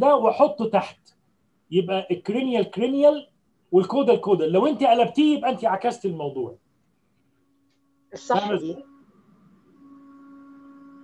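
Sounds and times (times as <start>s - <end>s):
faint steady humming tone: 0.0s - 11.0s.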